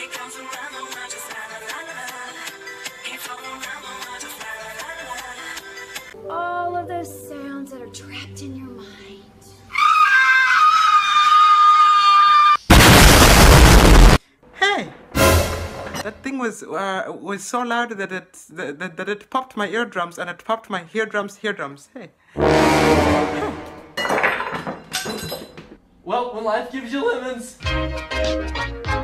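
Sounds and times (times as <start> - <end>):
loud explosion: 12.7 - 14.2, 22.4 - 23.9
lemons clattering into a bowl: 24.0 - 25.8.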